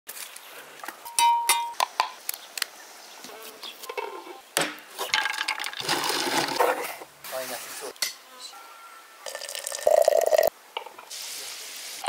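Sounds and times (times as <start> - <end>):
ringing metal clink: 1.1 - 1.8.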